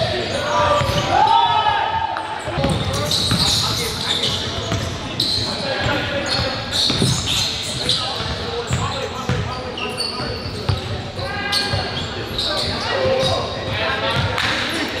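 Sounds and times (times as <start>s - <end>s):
sneakers squeaking: 0.0s - 15.0s.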